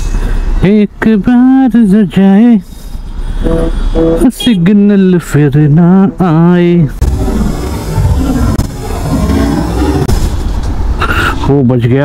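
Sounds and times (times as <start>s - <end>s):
motorcycle engine running: 7.0s - 9.2s.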